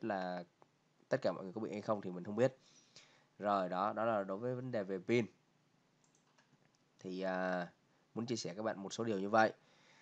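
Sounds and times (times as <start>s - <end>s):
computer mouse clicks: 6.0s - 7.1s.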